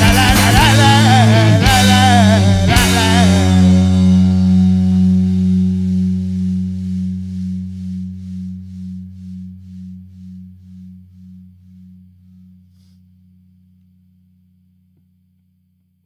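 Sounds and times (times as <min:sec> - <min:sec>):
punk rock guitar chord ringing: 0:00.0 - 0:09.2.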